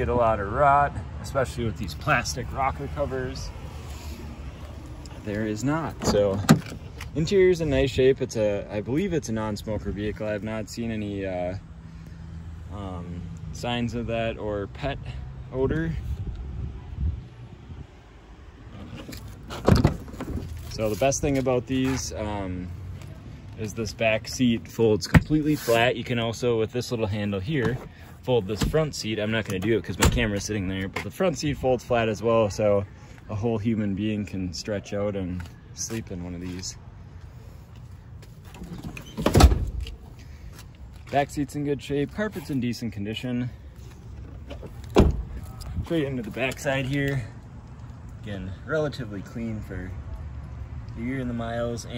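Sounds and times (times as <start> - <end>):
car door latch clattering: 5.9 - 6.9.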